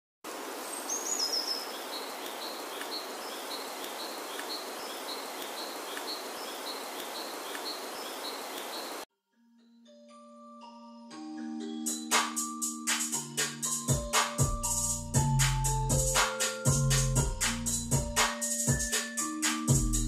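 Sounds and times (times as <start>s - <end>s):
steady nature hiss: 0.3s - 9.1s
soft mallet instrument music: 9.3s - 20.0s.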